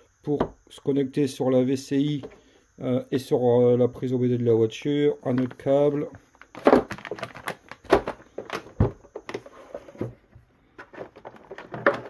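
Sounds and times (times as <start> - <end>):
plastic bags crinkling: 6.4 - 8.7.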